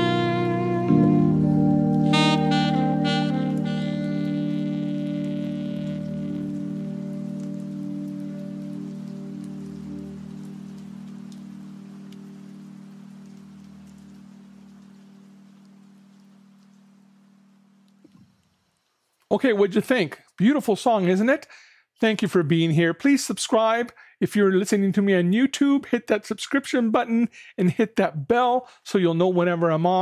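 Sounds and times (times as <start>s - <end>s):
saxophone held chord: 0.0s - 11.8s
backing music: 0.0s - 14.5s.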